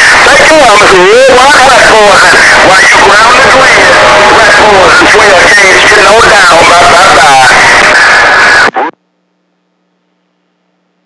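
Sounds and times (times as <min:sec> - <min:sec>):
voice over radio static: 0:00.0 - 0:08.9.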